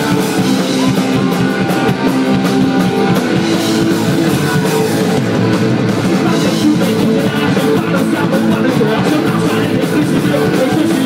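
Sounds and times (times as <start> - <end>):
distorted electric guitars: 0.0 - 11.0
drum kit: 0.0 - 11.0.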